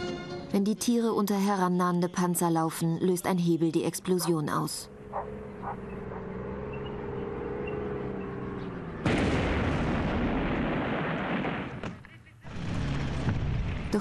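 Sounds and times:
explosion with rumble: 9.0s - 14.0s.

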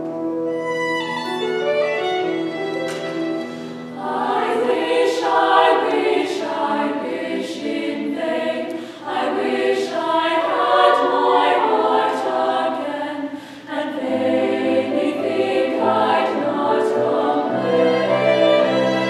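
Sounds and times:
girls' choir singing: 3.9s - 19.0s.

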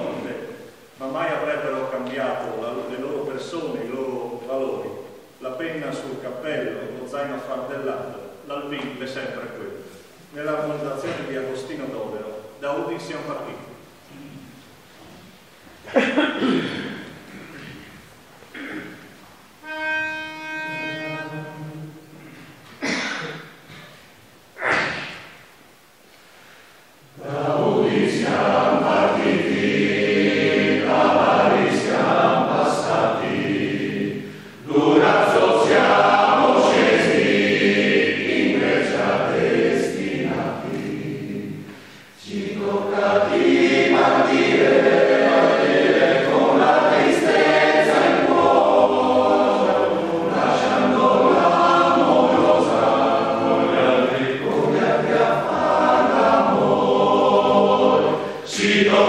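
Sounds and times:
men's choir singing a cappella: 0.0s - 4.0s, 27.1s - 59.0s.

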